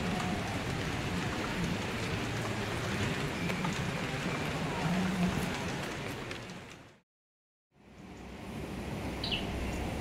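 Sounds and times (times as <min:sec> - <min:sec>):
rain on wet street: 0:00.0 - 0:07.0.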